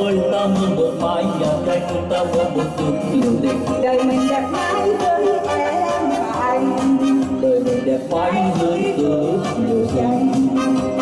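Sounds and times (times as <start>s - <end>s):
electronic keyboard pop music: 0.0s - 11.0s
programmed percussion beat: 0.0s - 11.0s.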